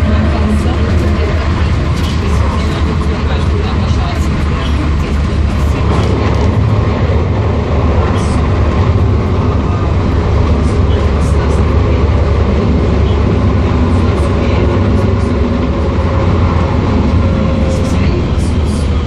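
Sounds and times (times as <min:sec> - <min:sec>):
train wheels rumbling on track: 0:00.0 - 0:19.0.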